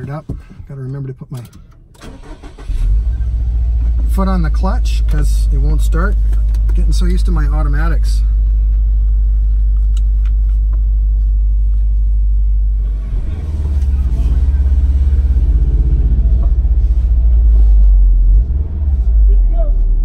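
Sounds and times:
car engine idling and pulling away: 1.6s - 20.0s.

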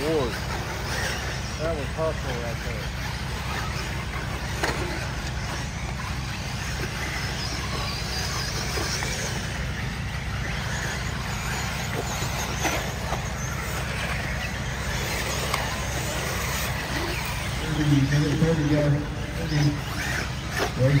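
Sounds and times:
high-pitched electric motor whines: 0.0s - 21.0s.

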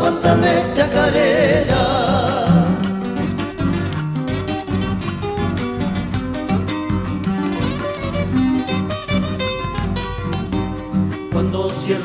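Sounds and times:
acoustic guitars strumming: 0.0s - 12.0s
bass line: 0.0s - 12.0s.

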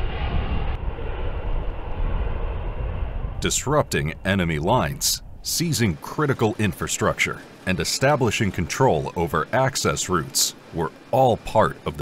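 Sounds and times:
propeller aircraft engines droning: 0.0s - 12.0s.

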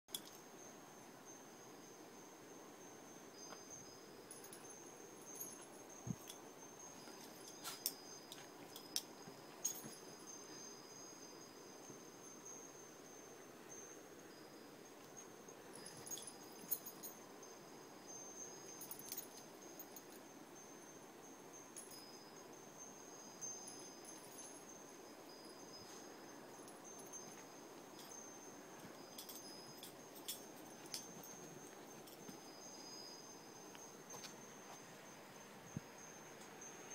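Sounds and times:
crickets trilling: 0.1s - 36.9s
pet collar tags jingling: 4.2s - 11.6s, 15.0s - 17.7s, 18.3s - 20.4s, 23.2s - 34.3s.

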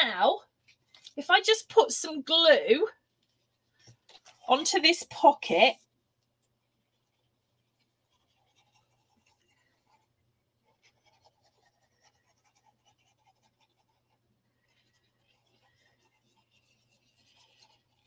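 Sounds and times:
glue bottle nozzle scratching: 14.8s - 18.0s.

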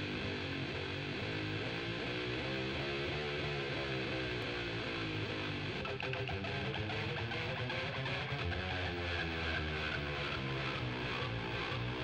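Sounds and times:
bass guitar: 0.0s - 12.0s
electric guitar riff: 0.0s - 12.0s.

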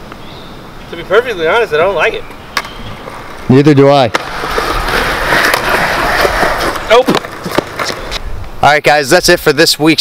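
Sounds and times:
skateboard wheels rolling on concrete: 0.0s - 10.0s.

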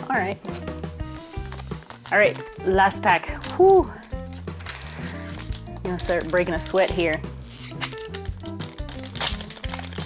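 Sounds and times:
background music with held notes: 0.0s - 10.0s
foil wrapper crinkling: 1.1s - 10.0s.

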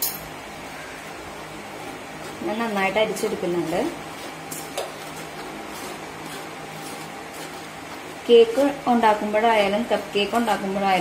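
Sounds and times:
spoon scraping flour in sieve: 1.8s - 11.0s.

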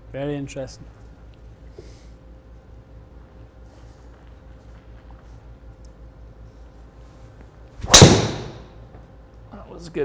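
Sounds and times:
golf club striking ball: 7.8s - 8.7s.

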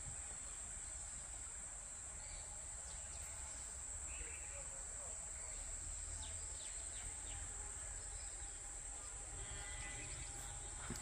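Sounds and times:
insect drone: 0.1s - 11.0s
low rumble of wind: 6.4s - 11.0s.

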